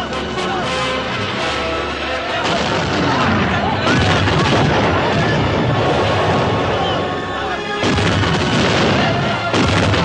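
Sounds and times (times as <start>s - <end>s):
continuous battle din: 1.8s - 10.0s
cannon fire: 2.4s - 6.8s, 7.8s - 10.0s.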